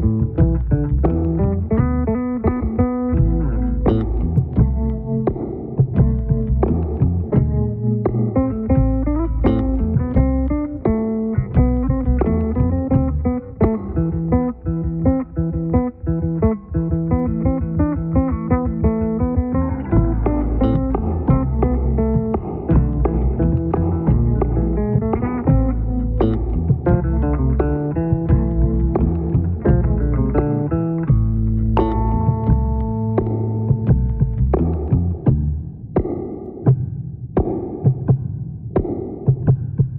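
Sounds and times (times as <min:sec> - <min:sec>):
solo electric bass guitar: 0:00.0 - 0:35.7.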